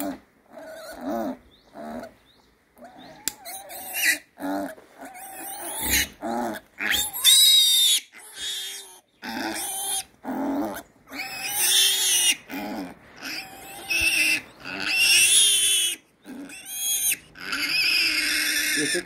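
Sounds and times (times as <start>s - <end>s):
piglet squealing: 2.8s - 19.0s.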